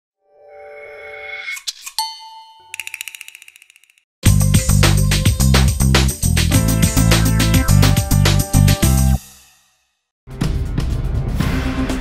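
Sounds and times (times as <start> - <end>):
bright electronic ding: 2.0 - 3.4
rapid tinkling ticks: 2.0 - 4.1.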